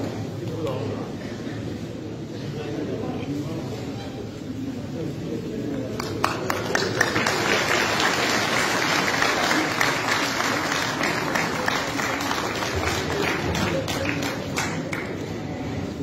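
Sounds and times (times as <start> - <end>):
murmur of voices: 0.0 - 16.0
audience applauding: 6.0 - 15.3.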